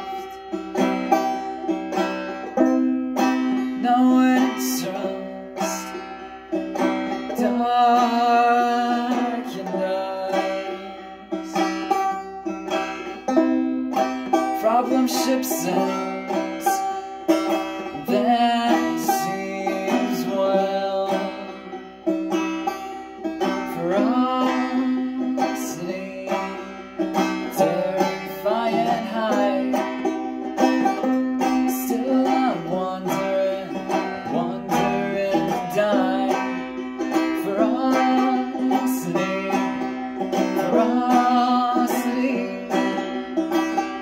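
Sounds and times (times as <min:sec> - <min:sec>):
person singing: 0:00.0 - 0:01.3, 0:01.9 - 0:13.6, 0:14.2 - 0:44.0
banjo picking: 0:00.0 - 0:44.0.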